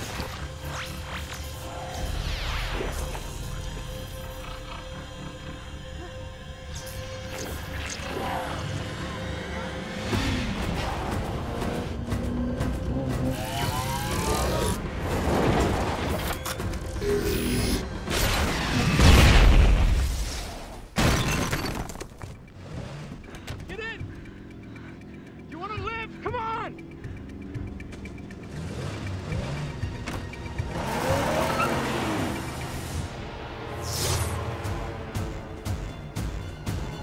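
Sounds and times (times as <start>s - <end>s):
car engine revving: 22.5s - 25.5s, 27.0s - 35.8s.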